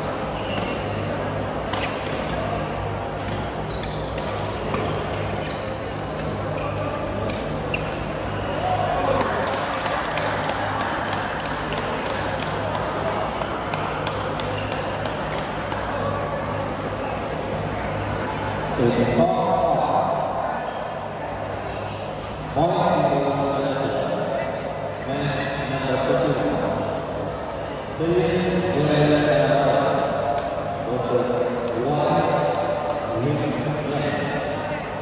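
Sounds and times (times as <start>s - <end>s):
shoe squeaks: 0.2s - 1.1s, 3.6s - 8.8s, 14.4s - 15.4s, 16.7s - 18.3s
racket hitting shuttlecock: 4.1s - 5.2s.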